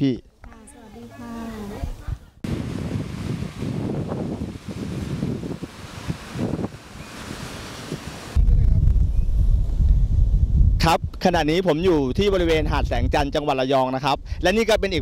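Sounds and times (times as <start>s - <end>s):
wind buffeting microphone: 1.7s - 15.0s
small waves breaking on sand: 2.4s - 8.4s.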